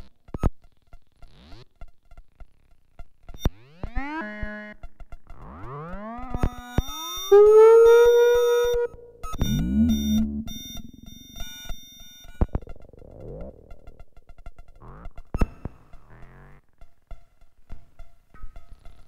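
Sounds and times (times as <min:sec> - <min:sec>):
synthesizer tones sliding upward: 0:07.3 - 0:11.7
low buzzing synth passage: 0:08.2 - 0:11.7.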